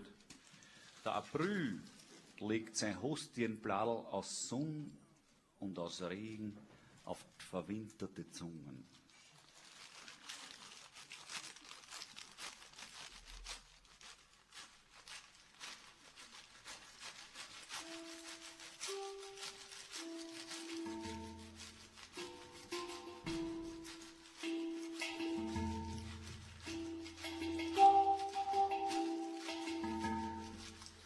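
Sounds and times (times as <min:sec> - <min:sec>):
soft shaker rattle: 0:00.0 - 0:03.0, 0:08.5 - 0:31.0
melody of held notes: 0:22.0 - 0:31.0.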